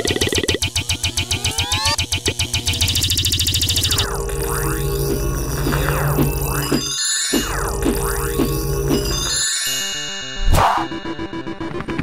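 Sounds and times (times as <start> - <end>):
fast electronic beat: 0.0 - 9.3.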